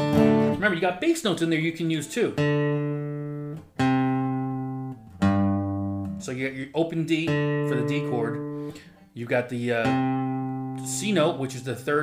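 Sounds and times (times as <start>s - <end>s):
acoustic guitar bass notes: 0.0s - 12.0s.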